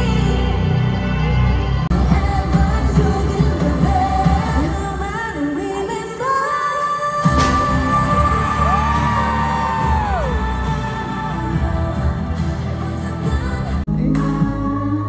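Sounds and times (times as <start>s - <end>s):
pop song with gliding vocals: 0.0s - 15.0s.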